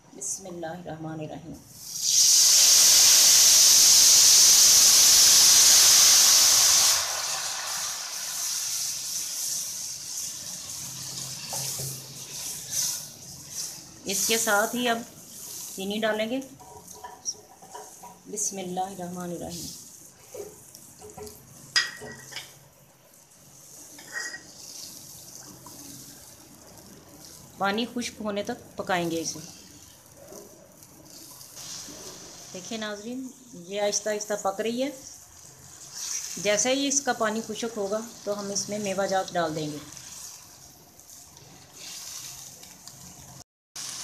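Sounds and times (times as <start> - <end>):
faint steady hiss: 0.0 - 44.0
halwa bubbling and sizzling in pan: 0.0 - 44.0
wooden spoon stirring: 11.0 - 27.8.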